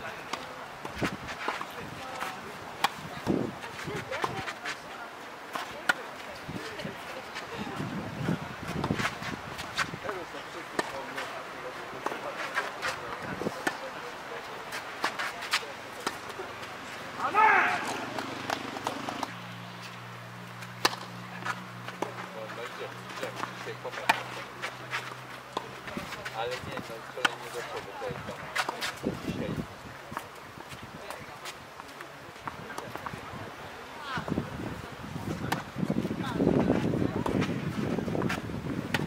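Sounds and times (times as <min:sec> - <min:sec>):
tennis balls struck by rackets: 0:00.3 - 0:04.7, 0:05.5 - 0:06.1, 0:10.8 - 0:11.2, 0:14.7 - 0:19.4, 0:20.6 - 0:29.0, 0:35.4 - 0:35.7, 0:38.1 - 0:39.0
loud shout: 0:17.2 - 0:18.0.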